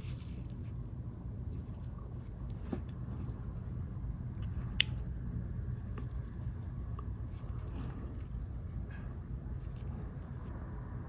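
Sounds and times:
soft brush strokes on paper: 0.0s - 0.8s
low steady hum: 0.0s - 11.0s.

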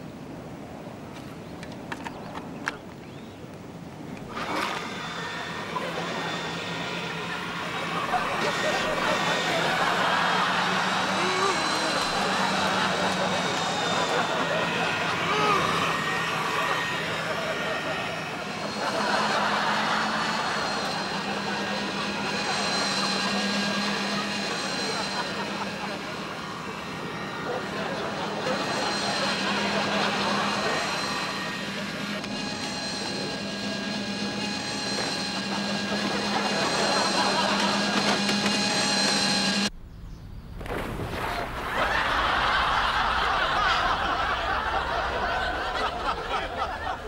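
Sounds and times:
toy boat electric motor whining: 4.2s - 39.7s.

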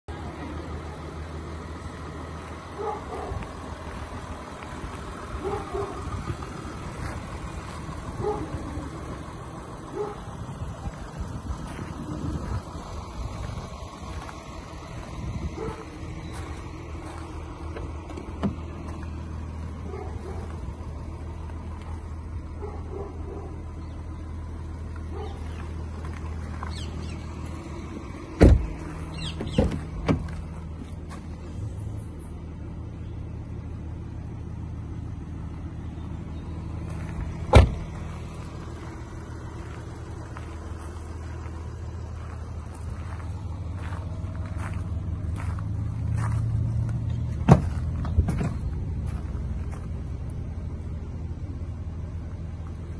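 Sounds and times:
diesel engine idling: 0.0s - 52.9s
car doors thudding shut: 17.7s - 19.0s, 28.0s - 30.5s, 37.4s - 38.0s, 47.3s - 48.6s.

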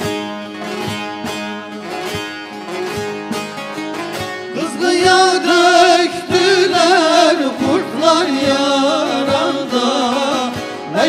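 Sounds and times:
plucked folk lute melody: 0.0s - 11.0s
man singing: 4.5s - 11.0s.

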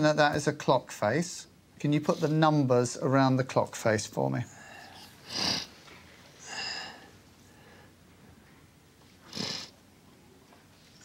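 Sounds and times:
person sniffing: 4.6s - 5.8s, 9.2s - 9.8s.

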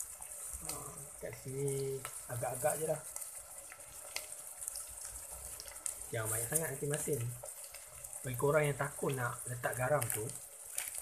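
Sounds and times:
salt crackling in oil: 0.0s - 11.0s
shallots sizzling in hot oil: 0.0s - 11.0s.

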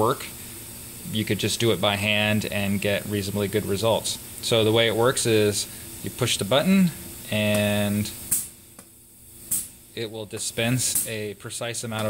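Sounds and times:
pneumatic dispenser air hiss: 6.7s - 8.6s, 9.2s - 9.9s.

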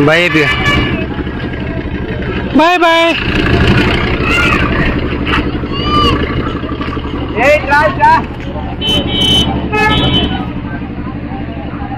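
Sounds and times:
vehicle horn blasts: 0.0s - 1.3s, 8.7s - 10.6s.

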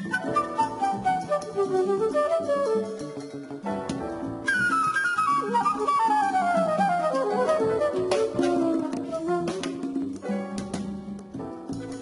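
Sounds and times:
flute run: 0.0s - 3.4s, 4.4s - 10.4s
jazz combo playing: 0.0s - 12.0s.

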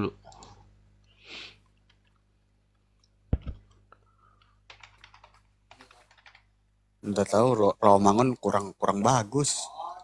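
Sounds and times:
soft keyboard typing: 3.0s - 6.6s.

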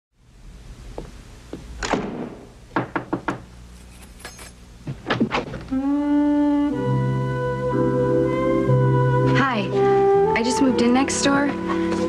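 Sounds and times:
knocking on wooden door: 2.1s - 3.5s.

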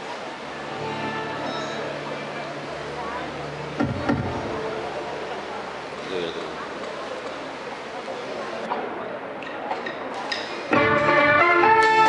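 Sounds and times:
hall and audience noise: 0.0s - 12.0s
live band playing chords: 10.7s - 12.0s.

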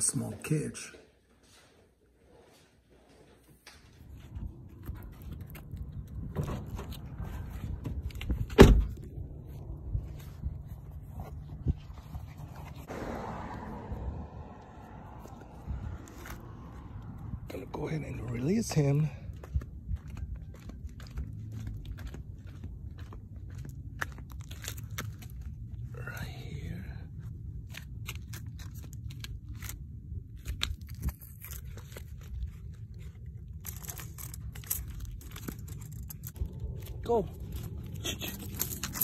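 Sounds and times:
low rumble: 3.8s - 23.0s, 33.0s - 39.0s.

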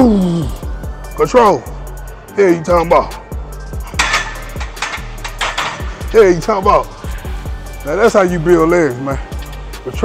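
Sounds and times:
background music with beat: 0.0s - 10.0s
barbell clanking: 3.8s - 6.1s
plates rattling: 3.9s - 6.1s.

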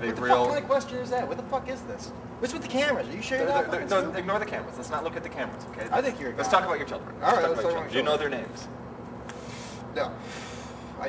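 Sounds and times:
steady low hum: 0.0s - 11.0s
man breathing while smoking: 9.3s - 11.0s.

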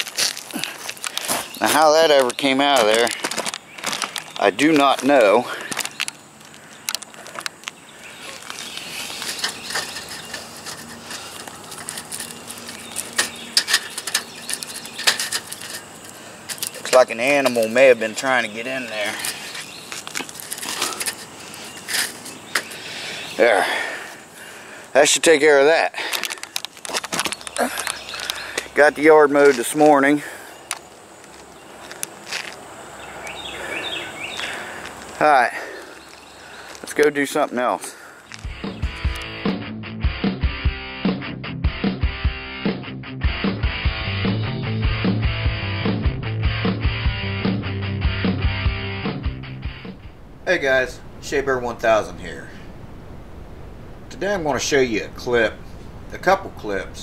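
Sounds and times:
bird chirping: 1.2s - 23.4s, 26.7s - 32.2s, 32.8s - 35.1s, 35.7s - 37.3s, 38.2s - 39.4s
insect drone: 49.0s - 57.0s.

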